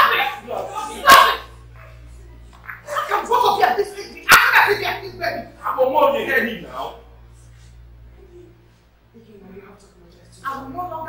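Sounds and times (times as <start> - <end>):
raised voices: 0.0 - 8.7
low steady hum: 0.0 - 11.0.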